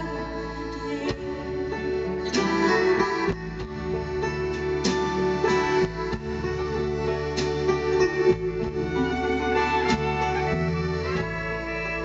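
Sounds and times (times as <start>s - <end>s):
live band playing instrumental: 0.0s - 12.0s.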